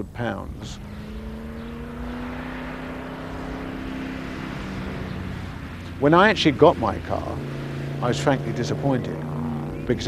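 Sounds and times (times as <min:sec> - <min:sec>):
car engine driving: 0:00.0 - 0:10.0.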